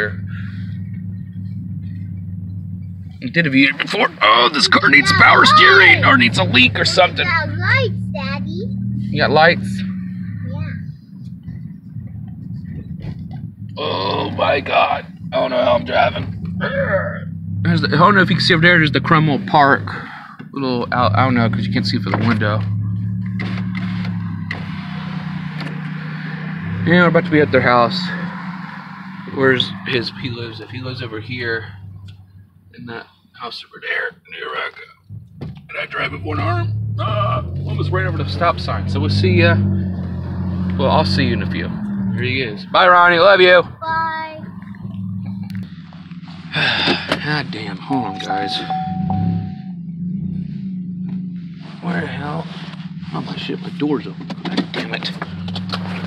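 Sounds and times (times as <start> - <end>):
engine and road hum: 0.0 - 56.0
man speaking: 3.2 - 7.3, 13.8 - 22.6, 26.8 - 28.2, 29.3 - 31.7, 32.8 - 34.9, 35.7 - 39.7, 40.8 - 43.7, 46.6 - 48.9, 53.1 - 55.2.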